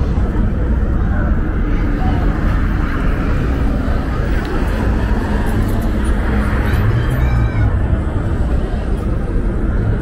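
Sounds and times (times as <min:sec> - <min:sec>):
cars passing on busy road: 0:00.0 - 0:10.0.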